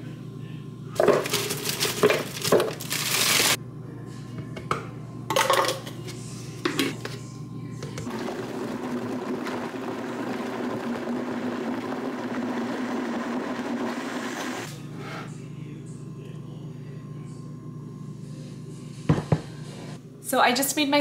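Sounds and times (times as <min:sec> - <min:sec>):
countertop blender running: 0:01.0 - 0:03.6, 0:07.9 - 0:14.7.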